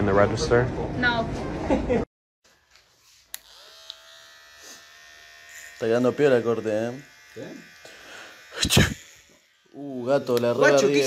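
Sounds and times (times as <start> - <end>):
hair clipper motor buzzing: 2.5 - 11.0.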